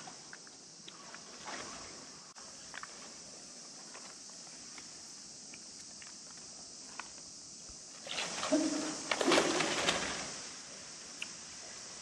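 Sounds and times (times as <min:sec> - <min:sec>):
plastic sheeting rustling and crackling: 0:08.0 - 0:10.8.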